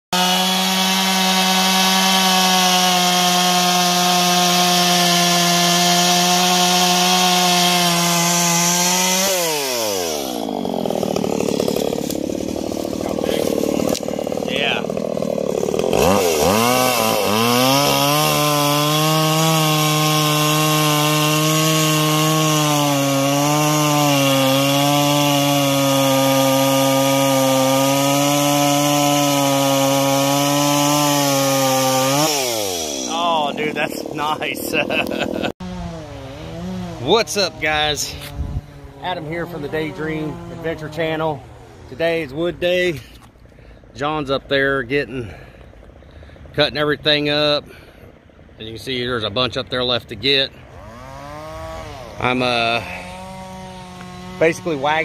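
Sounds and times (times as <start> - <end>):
chainsaw cutting log: 0.2 - 44.2, 50.2 - 55.0.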